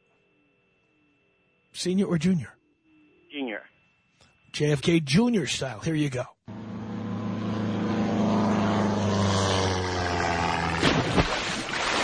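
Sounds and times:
propeller plane engine droning: 0:06.5 - 0:11.2.

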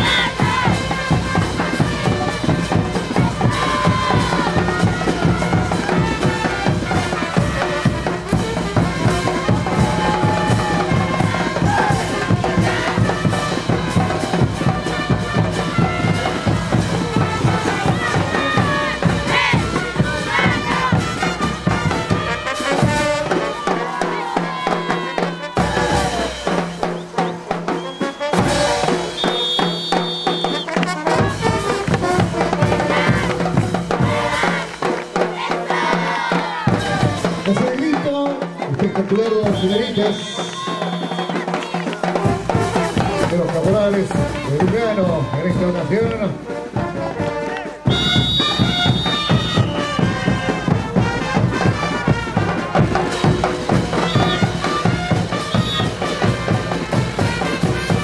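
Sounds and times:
brass dance music: 0:00.0 - 0:58.0
low drums: 0:00.0 - 0:58.0.

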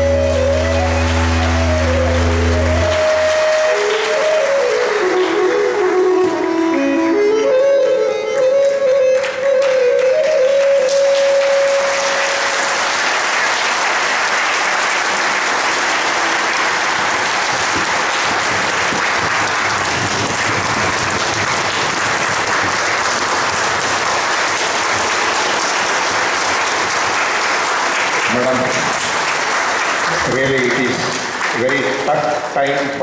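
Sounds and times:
audience applauding: 0:00.0 - 0:06.9, 0:07.8 - 0:33.0
held harmonium note: 0:00.0 - 0:13.2, 0:14.4 - 0:20.9.

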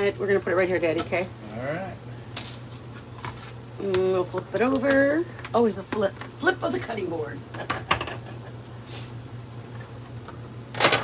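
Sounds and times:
fritters sizzling in hot oil: 0:00.0 - 0:10.8.

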